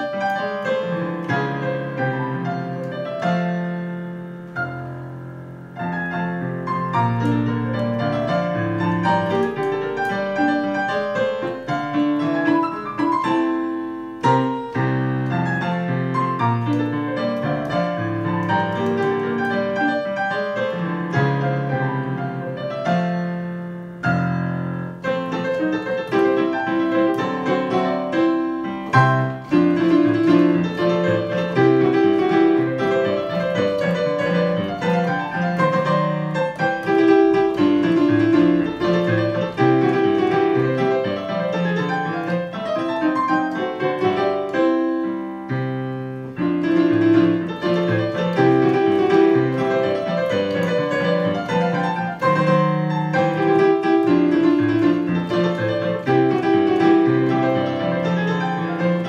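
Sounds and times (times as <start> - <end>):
digital piano playing: 0.0 - 59.0.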